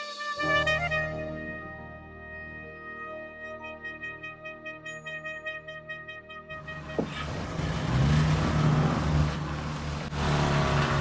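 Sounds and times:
pickup engine running: 0:06.6 - 0:11.0.

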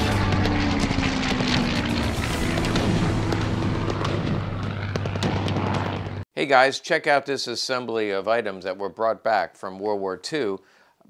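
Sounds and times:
intro music: 0:00.0 - 0:04.8
low engine-like drone: 0:00.0 - 0:06.2
short sharp crackles: 0:00.0 - 0:06.2.

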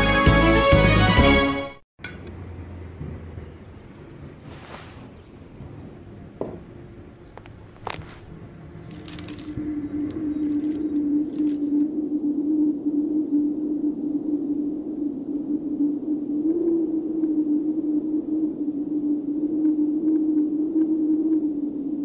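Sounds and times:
faint clicks: 0:19.6 - 0:21.5.

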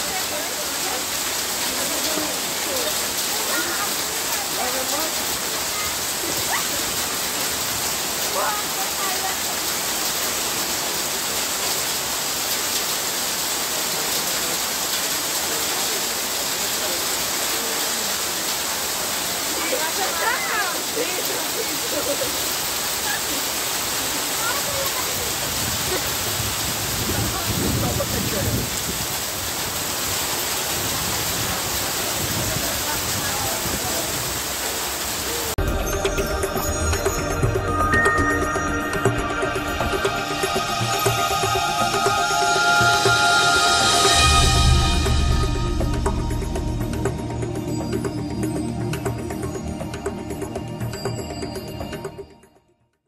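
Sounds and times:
heavy rain and hail: 0:00.0 - 0:51.2
electronic intro music: 0:35.6 - 0:52.6.

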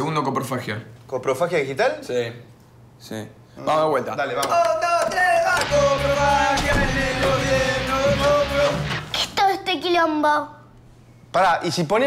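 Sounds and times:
person singing long notes: 0:05.4 - 0:09.1
electric bass: 0:05.6 - 0:09.1
electric guitar: 0:05.6 - 0:09.2.

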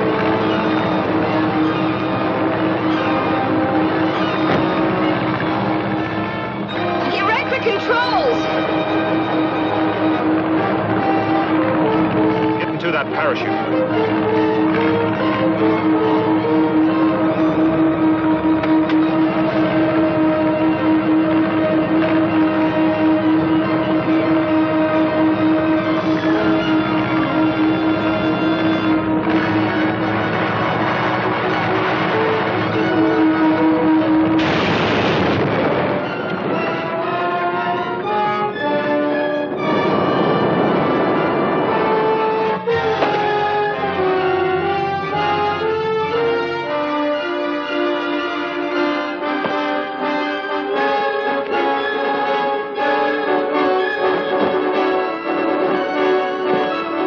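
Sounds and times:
dramatic orchestral music: 0:00.0 - 0:57.0.

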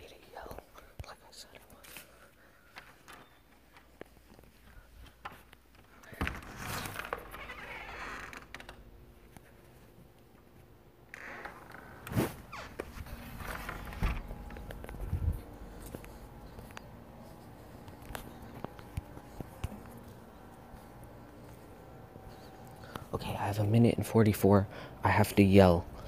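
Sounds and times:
clothing rustling and scraping: 0:09.0 - 0:23.0.

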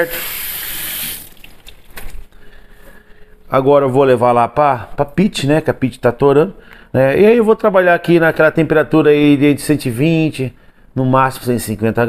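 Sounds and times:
tap running water over hands: 0:00.0 - 0:02.2.

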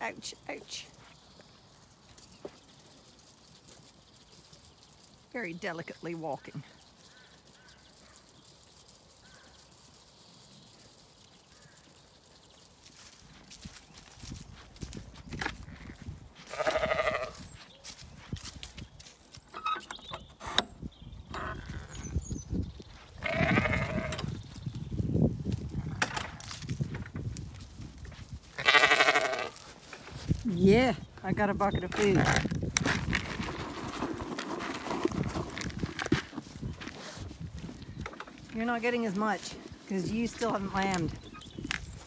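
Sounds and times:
quiet rustling: 0:00.2 - 0:21.5, 0:25.4 - 0:42.0
sheep bleating: 0:16.5 - 0:17.4, 0:23.2 - 0:24.3, 0:28.6 - 0:29.7.

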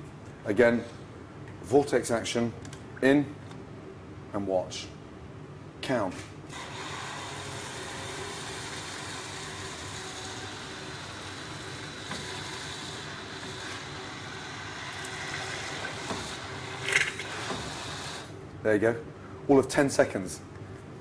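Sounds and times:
immersion blender whining: 0:06.5 - 0:18.3.

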